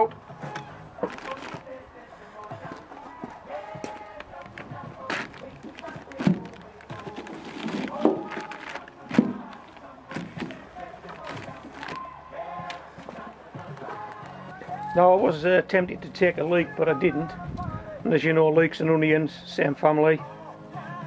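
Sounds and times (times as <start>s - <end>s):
faint song with singing: 0.0s - 21.0s
plastic rustling: 1.0s - 1.7s, 3.9s - 12.0s
vegetables knocking: 3.8s - 12.0s.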